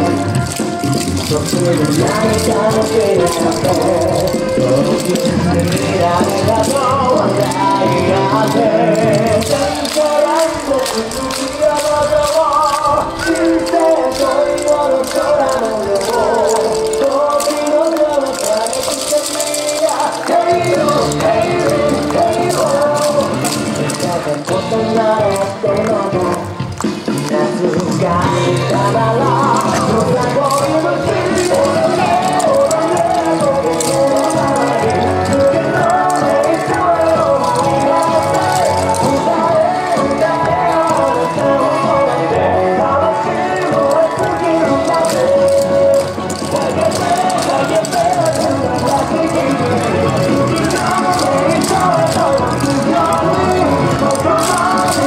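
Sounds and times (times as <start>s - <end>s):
upbeat dance song with singing: 0.0s - 55.0s.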